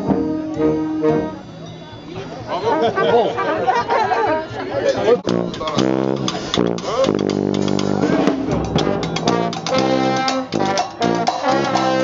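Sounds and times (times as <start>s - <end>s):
people chatting: 0.3s - 7.2s.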